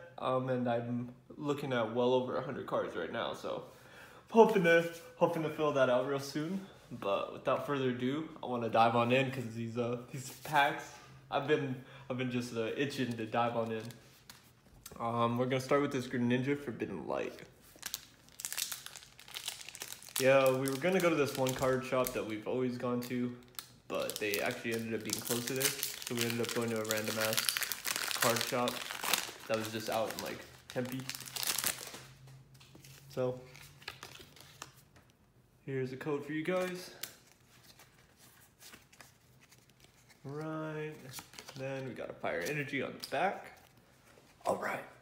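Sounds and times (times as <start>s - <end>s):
foil wrapper crinkling: 17.6s - 22.3s, 23.0s - 32.2s
cards rustling and clicking: 23.5s - 35.1s, 36.5s - 43.8s.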